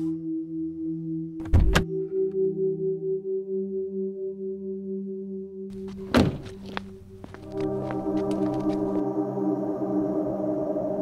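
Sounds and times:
ambient music drone: 0.0 - 11.0
car door shutting: 5.9 - 6.7.

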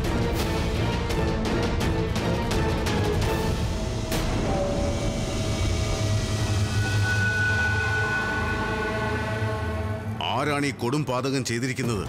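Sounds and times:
held synth drone: 3.6 - 10.2
high held tone: 4.4 - 10.2.

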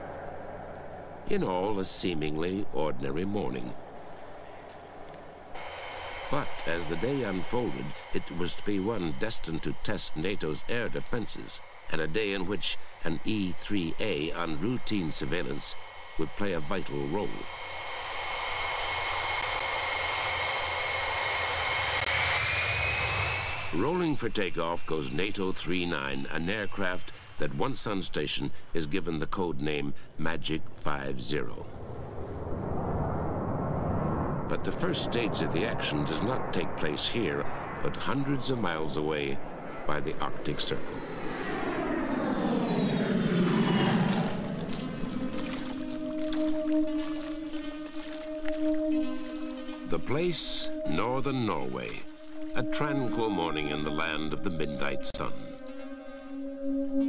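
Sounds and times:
low engine rumble: 0.0 - 27.1, 31.3 - 57.0
jet engines whining: 0.0 - 27.4, 31.4 - 57.0.

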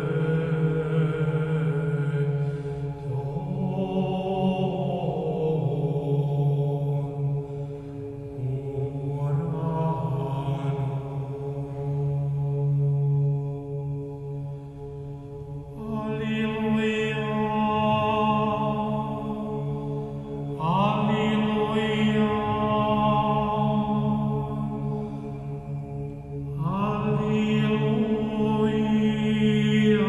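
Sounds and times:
church chant: 0.0 - 30.0
steady low drone: 0.0 - 30.0.

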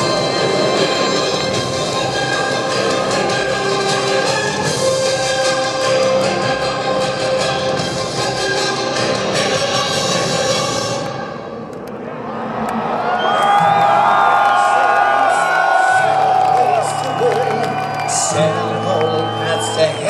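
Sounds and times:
crowd cheering and whistling: 12.0 - 20.0.

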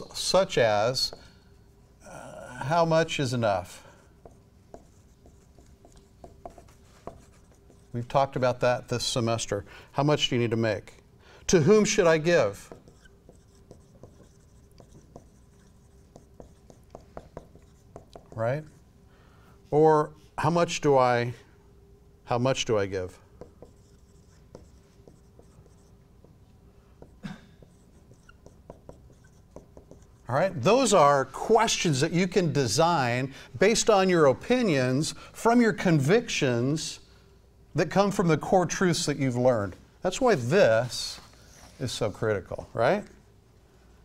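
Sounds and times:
marker writing on whiteboard: 0.9 - 1.3, 4.1 - 8.6, 12.0 - 18.9, 23.1 - 26.4, 27.0 - 31.0.

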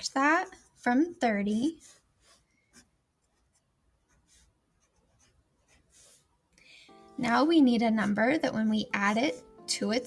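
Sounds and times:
pen scratching on paper: 0.0 - 6.3, 7.2 - 10.0.

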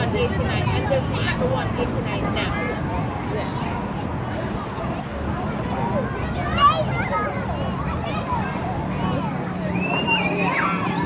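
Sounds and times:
low hum of city background: 0.0 - 11.0
children's high-pitched voices: 6.0 - 11.0.

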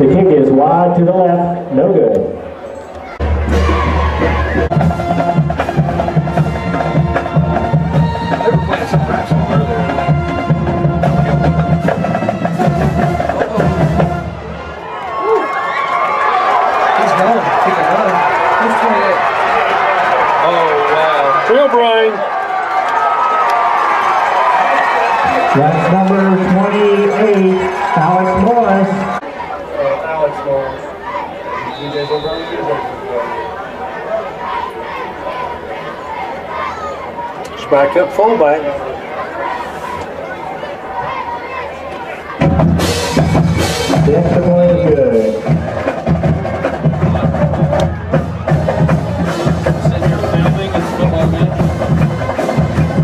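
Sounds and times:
stadium crowd talking and cheering: 0.0 - 53.0
band playing with drums: 3.2 - 14.8, 24.5 - 29.2, 42.3 - 53.0.

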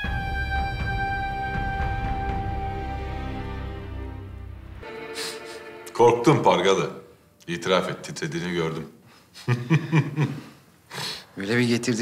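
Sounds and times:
man chuckling: 9.4 - 10.5
quick breath in: 10.9 - 11.3.

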